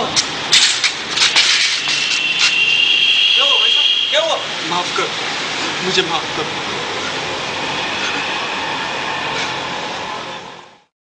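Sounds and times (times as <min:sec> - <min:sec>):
steady rushing noise: 0:00.0 - 0:10.9.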